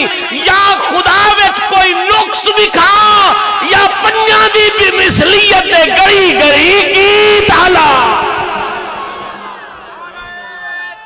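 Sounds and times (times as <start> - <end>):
man shouting over public address: 0.0 - 8.9.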